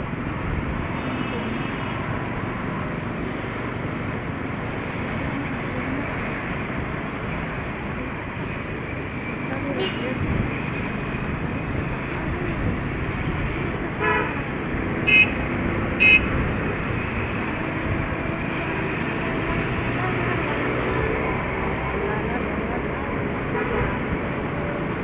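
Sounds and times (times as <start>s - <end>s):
traffic road noise: 0.0s - 25.0s
vehicle horn toots: 15.0s - 15.4s, 16.0s - 16.3s.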